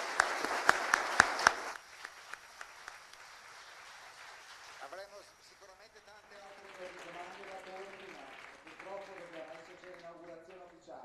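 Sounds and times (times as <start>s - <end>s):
audience applause: 0.0s - 11.0s.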